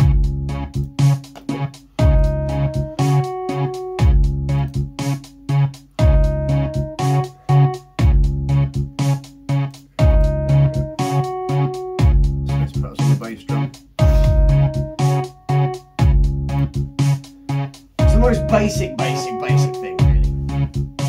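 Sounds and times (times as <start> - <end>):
electronic drum and keys loop: 0.0 - 21.0.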